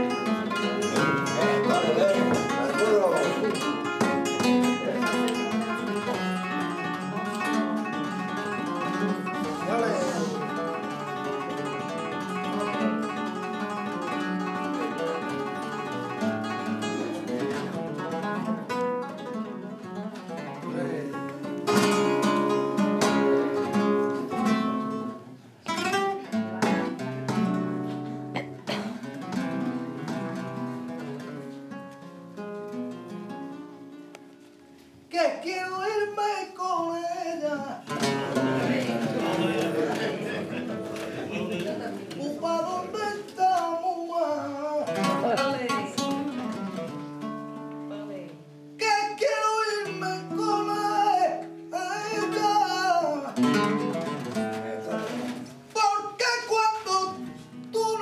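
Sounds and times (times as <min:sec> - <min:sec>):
flamenco acoustic guitar: 0:00.0 - 0:58.0.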